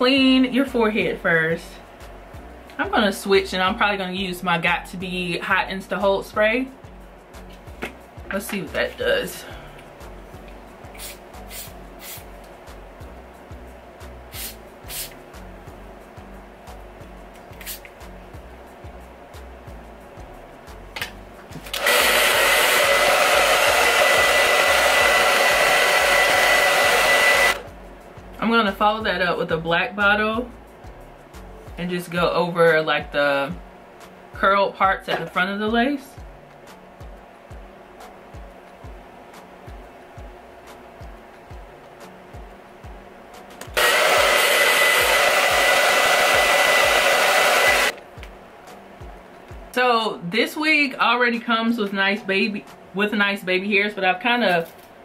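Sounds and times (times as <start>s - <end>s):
hair dryer blowing with high whine: 21.6s - 27.7s, 43.6s - 48.0s.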